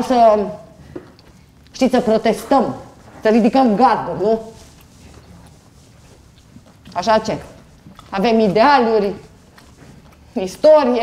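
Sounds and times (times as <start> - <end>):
person speaking: 0.0 - 0.8, 1.6 - 6.2, 6.8 - 11.0
faint small noises: 0.0 - 11.0.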